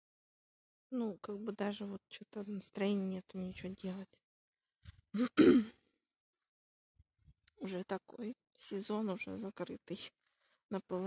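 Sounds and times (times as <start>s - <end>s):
woman clearing her throat: 5.2s - 5.8s.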